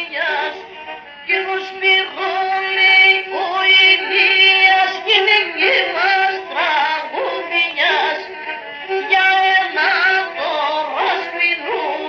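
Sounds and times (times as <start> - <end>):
bowed lyra dance melody: 0.0 - 12.0.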